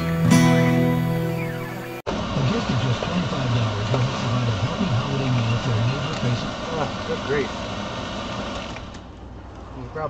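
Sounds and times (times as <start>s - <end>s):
engine idling rumble: 0.0s - 10.0s.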